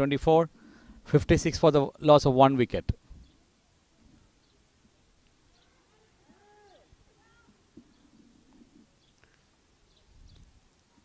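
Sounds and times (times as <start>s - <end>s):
faint arching calls: 5.3s - 10.5s.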